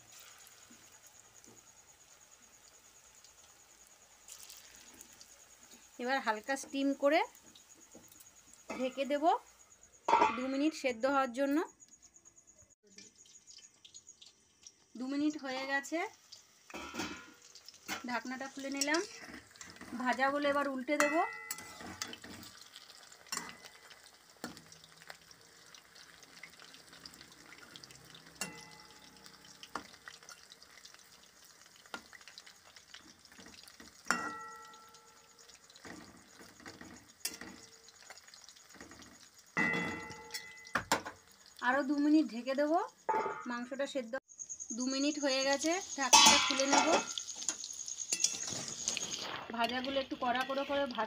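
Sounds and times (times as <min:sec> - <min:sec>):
food crackling in hot oil: 0:00.0 - 0:11.4, 0:12.8 - 0:51.0
metal spatula scraping wok: 0:16.7 - 0:20.2, 0:20.9 - 0:24.0, 0:45.9 - 0:51.0.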